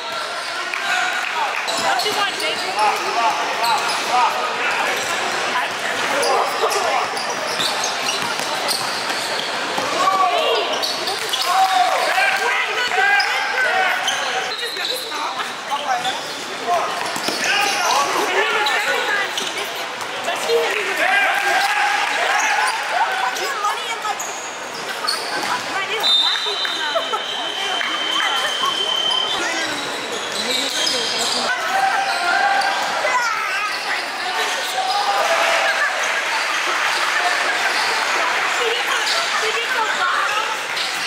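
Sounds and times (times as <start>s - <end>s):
voices of players and spectators: 0.0s - 41.0s
basketball bouncing on court: 7.0s - 9.9s.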